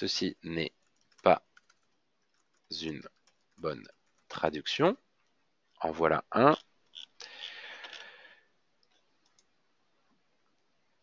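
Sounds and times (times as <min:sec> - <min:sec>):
faint clicks: 0:00.8 - 0:04.4, 0:08.8 - 0:09.5.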